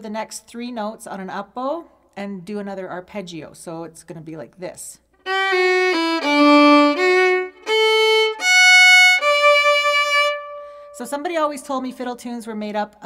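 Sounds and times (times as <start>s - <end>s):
solo fiddle playing a waltz: 5.2s - 11.0s.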